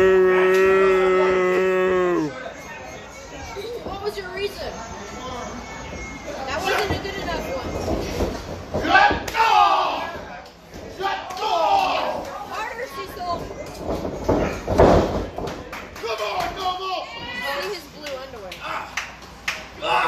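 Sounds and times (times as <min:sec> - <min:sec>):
people shouting: 0:00.0 - 0:02.4, 0:08.8 - 0:10.2, 0:11.0 - 0:12.2, 0:19.8 - 0:20.0.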